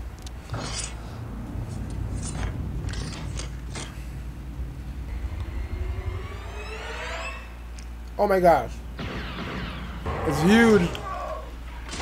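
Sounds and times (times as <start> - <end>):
metallic clinks and scrapes: 0.5 - 1.0
low rumble: 0.5 - 10.3
rising pitched sound: 4.7 - 8.3.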